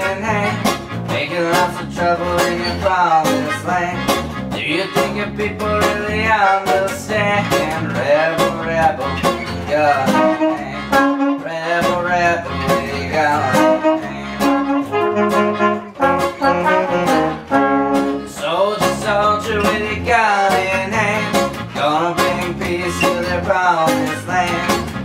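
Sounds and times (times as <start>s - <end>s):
bass: 0.0s - 25.0s
strummed acoustic guitars: 0.0s - 25.0s
trumpet and trombone melody: 0.0s - 25.0s.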